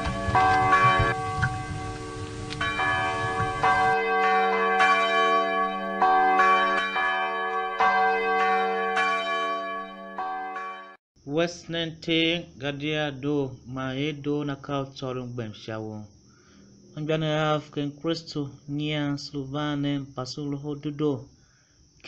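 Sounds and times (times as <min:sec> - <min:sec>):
church bells ringing: 0:00.0 - 0:11.0.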